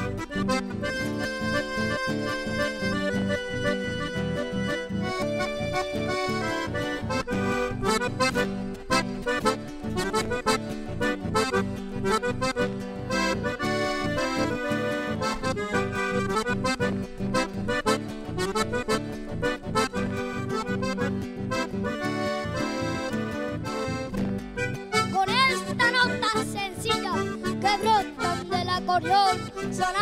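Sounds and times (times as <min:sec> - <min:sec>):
acoustic guitar accompaniment: 0:00.0 - 0:30.0
button accordion melody: 0:00.0 - 0:30.0.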